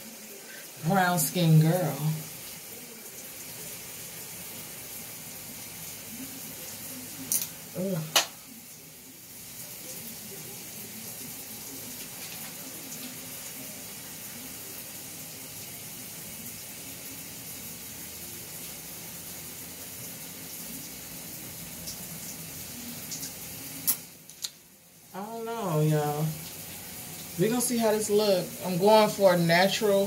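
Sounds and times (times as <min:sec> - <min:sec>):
water running from sink tap: 0:00.0 - 0:30.0.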